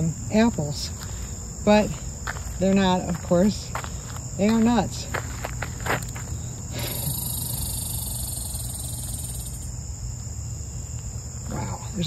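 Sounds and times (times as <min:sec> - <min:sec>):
higher-pitched insect: 0:00.0 - 0:12.0
insects trilling: 0:00.0 - 0:12.0.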